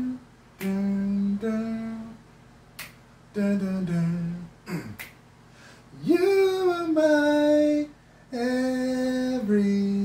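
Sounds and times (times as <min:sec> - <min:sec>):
man humming: 0:00.0 - 0:02.2, 0:03.4 - 0:05.2
finger snap click: 0:00.6 - 0:01.0, 0:02.8 - 0:03.0, 0:04.9 - 0:05.2.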